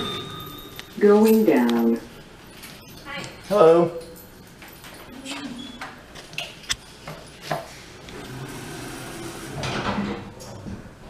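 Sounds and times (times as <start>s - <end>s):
elevator doors sliding shut: 8.1s - 10.7s.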